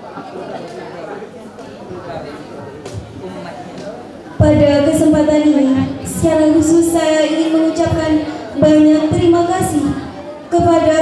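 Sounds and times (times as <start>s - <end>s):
indistinct chatter of many voices: 0.0s - 11.0s.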